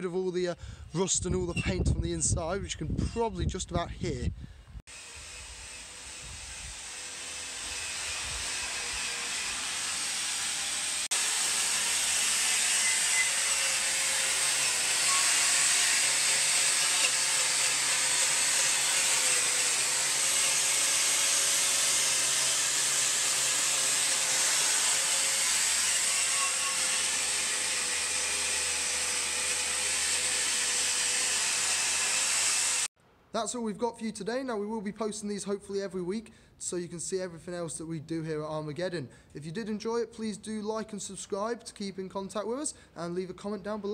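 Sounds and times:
angle grinder grinding metal: 0:04.9 - 0:32.9.

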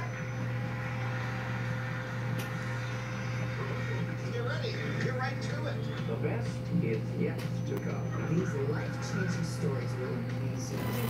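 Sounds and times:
ventilation fan hum: 0:00.0 - 0:11.0.

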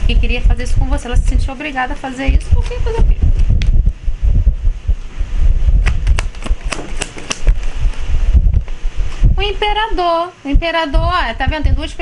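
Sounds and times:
wind buffeting microphone: 0:00.0 - 0:12.0
cards clicking: 0:05.8 - 0:07.6.

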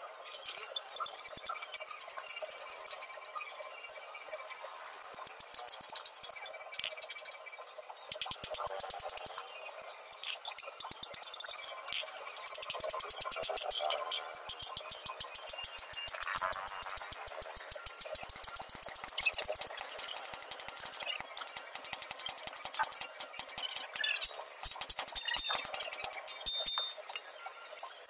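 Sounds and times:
hammer striking steel on anvil: 0:23.4 - 0:27.3.

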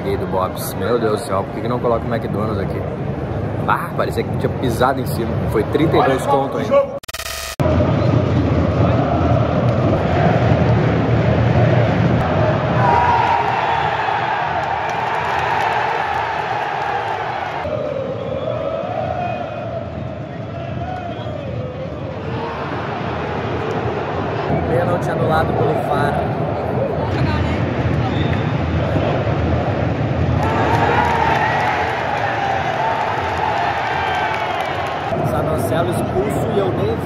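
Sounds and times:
digital glitch transition effect: 0:07.0 - 0:07.6
stadium crowd chanting and singing: 0:07.6 - 0:37.0.

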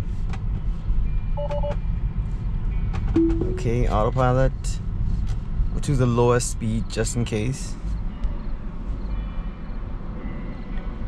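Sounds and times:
faint high tone: 0:03.2 - 0:04.0.

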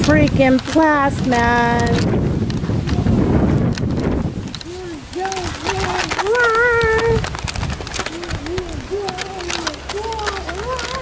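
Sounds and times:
camera handling rustle: 0:00.0 - 0:11.0
wind buffeting microphone: 0:00.0 - 0:11.0.

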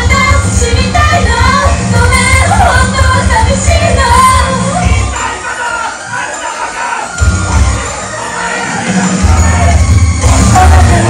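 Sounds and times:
women singing: 0:00.0 - 0:07.1, 0:10.4 - 0:11.0
audience shouting along: 0:04.6 - 0:11.0
heavy bass beat: 0:07.2 - 0:08.0, 0:09.1 - 0:11.0.

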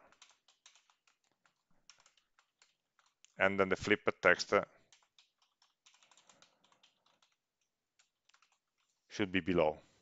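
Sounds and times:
keyboard typing clicks: 0:00.0 - 0:03.4, 0:04.9 - 0:07.4, 0:08.0 - 0:08.6.

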